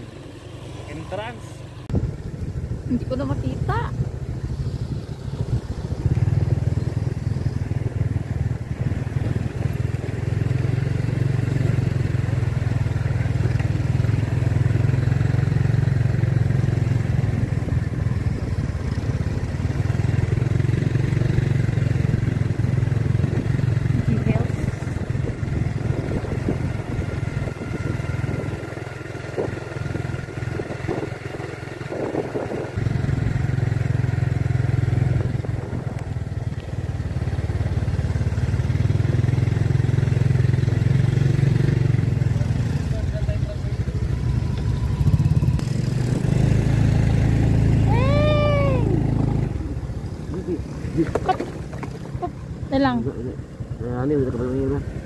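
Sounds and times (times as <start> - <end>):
scooter engine running: 0.0 - 55.0
wind rumbling on microphone: 1.8 - 14.8, 15.4 - 39.3.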